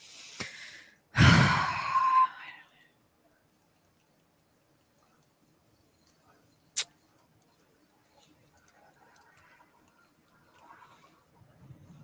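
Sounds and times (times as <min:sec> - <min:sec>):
woman sighing heavily: 0:01.2 - 0:02.5.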